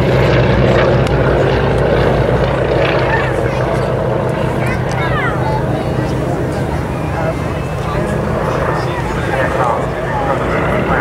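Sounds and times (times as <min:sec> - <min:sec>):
aircraft piston engines droning: 0:00.0 - 0:11.0
voices talking: 0:00.0 - 0:11.0.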